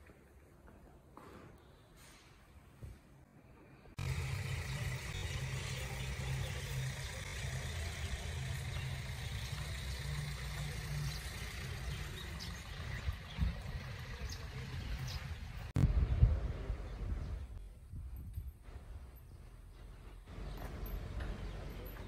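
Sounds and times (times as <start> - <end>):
vehicle engine idling: 4.0 - 15.8, 19.9 - 22.0.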